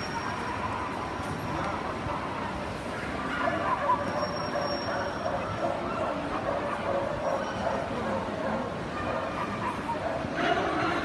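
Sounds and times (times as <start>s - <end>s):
crowd babble in a hall: 0.0s - 11.0s
dog yipping and barking: 3.0s - 7.9s, 9.0s - 10.2s.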